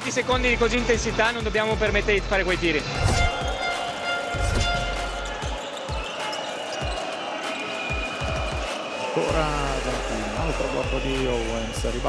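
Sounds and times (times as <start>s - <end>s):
music with sustained tones: 2.2s - 12.0s.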